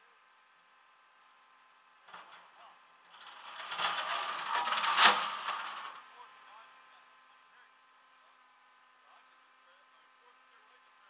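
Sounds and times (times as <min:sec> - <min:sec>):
chain rattling on metal deck: 0:02.1 - 0:06.0.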